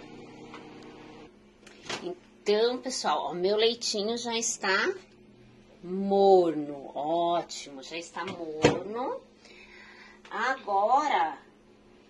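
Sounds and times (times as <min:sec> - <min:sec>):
microwave oven humming: 0:00.0 - 0:12.0.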